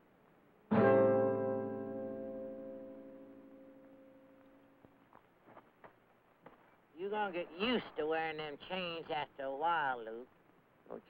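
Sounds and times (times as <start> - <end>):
piano music: 0.7 - 4.8.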